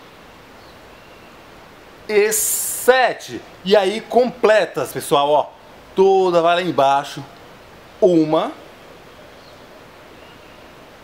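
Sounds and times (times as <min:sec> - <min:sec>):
outdoor ambience hiss: 0:00.0 - 0:11.0.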